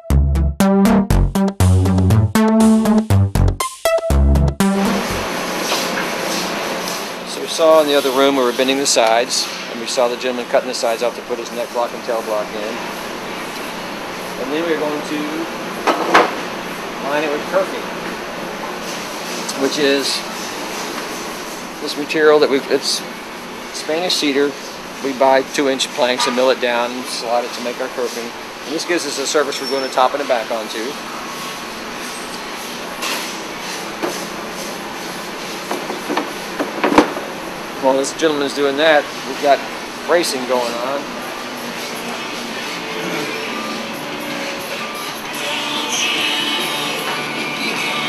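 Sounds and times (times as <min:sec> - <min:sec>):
steady background hum: 0:04.6 - 0:48.0
workshop machinery rushing: 0:04.7 - 0:43.5.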